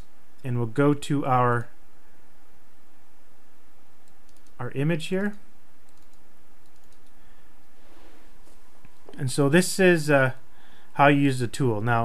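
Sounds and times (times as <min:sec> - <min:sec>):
steady background hiss: 0:00.0 - 0:12.0
computer clicks: 0:04.0 - 0:07.2.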